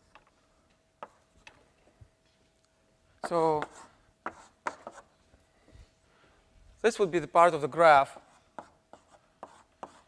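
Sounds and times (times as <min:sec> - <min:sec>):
faint steady hum: 0:00.0 - 0:10.0
chalk tapping on blackboard: 0:01.0 - 0:01.6, 0:03.2 - 0:05.1, 0:08.1 - 0:10.0.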